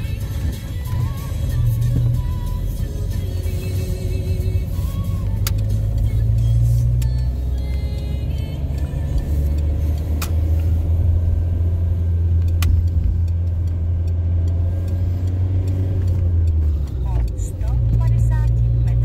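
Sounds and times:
car engine drone: 0.0 - 19.0
road noise: 0.0 - 19.0.

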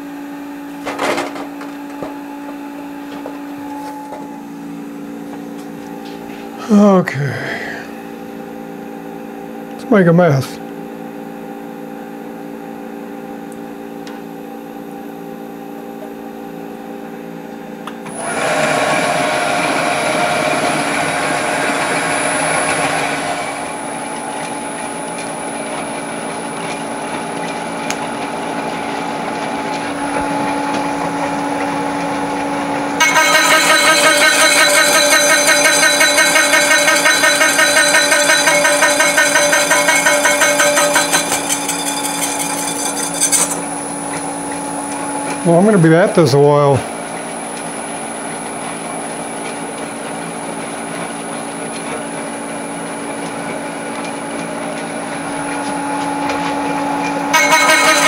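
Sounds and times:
milling machine running: 17.9 - 46.2, 46.8 - 58.0
saw cutting metal rattling: 18.1 - 26.8, 33.0 - 44.6, 57.0 - 58.0.

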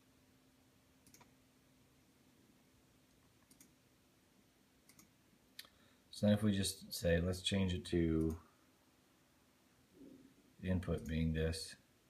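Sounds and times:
computer mouse clicks: 1.0 - 1.4, 3.2 - 3.8, 4.8 - 5.7.

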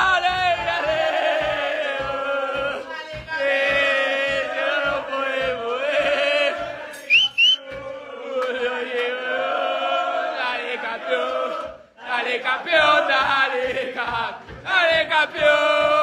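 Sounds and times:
men chanting: 0.0 - 16.0
short rising whistles: 7.0 - 7.6.

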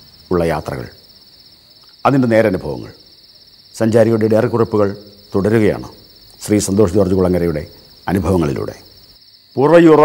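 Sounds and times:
cricket trill: 0.0 - 10.0
man speaking: 0.3 - 1.0, 2.0 - 3.0, 3.8 - 8.9, 9.6 - 10.0.

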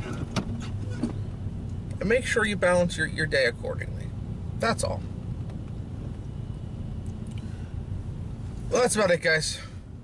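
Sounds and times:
car engine and road rumble: 0.0 - 10.0.

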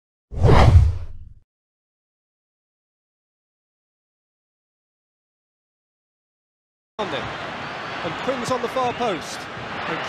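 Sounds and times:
whoosh sound effect: 0.4 - 1.3.

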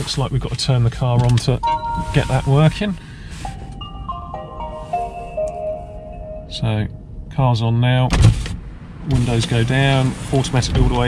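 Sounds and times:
car power-on chime: 1.6 - 7.0.

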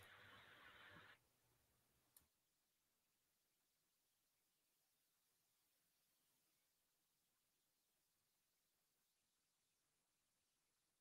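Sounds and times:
faint hiss: 0.0 - 2.1.

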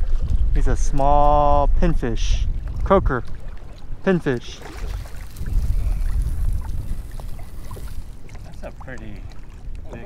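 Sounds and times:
wind buffeting microphone: 0.0 - 10.0
small water splashes: 2.2 - 10.0.

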